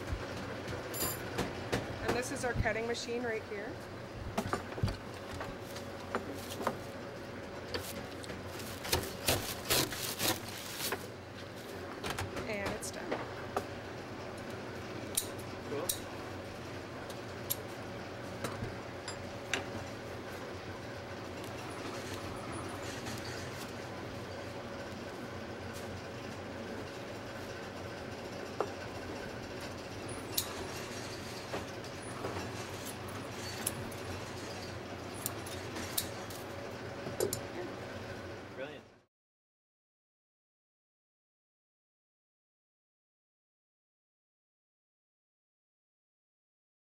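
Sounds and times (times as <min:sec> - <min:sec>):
workshop machinery hum: 0:00.0 - 0:39.1
broom cutting machine chopping: 0:08.8 - 0:11.0.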